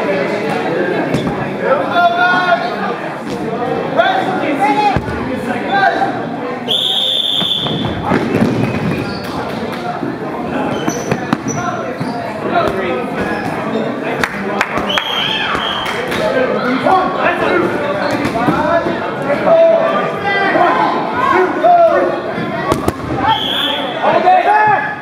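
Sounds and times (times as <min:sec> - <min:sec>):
voices chattering and shouting: 0:00.0 - 0:25.0
referee's whistle blast: 0:06.7 - 0:07.9, 0:23.2 - 0:24.0.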